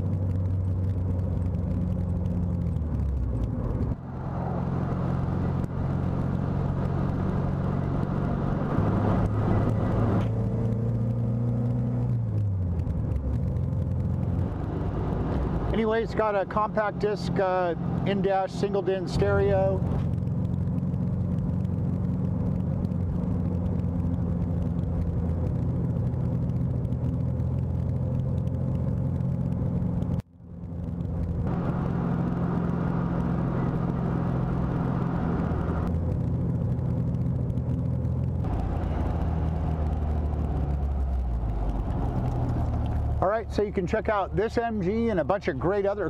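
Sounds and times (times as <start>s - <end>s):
car engine running: 0.0s - 46.0s
road noise: 0.0s - 46.0s.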